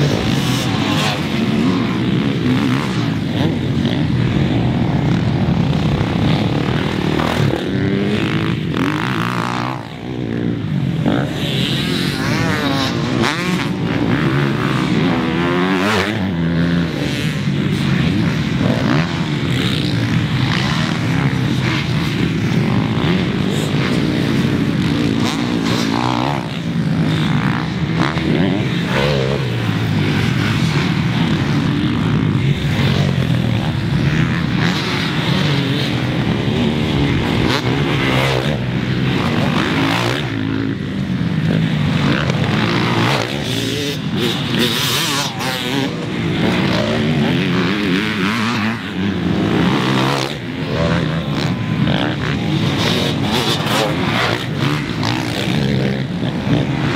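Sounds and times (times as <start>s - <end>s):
motocross bike engines revving: 0.0s - 56.9s
motocross bike passing close: 0.0s - 56.9s.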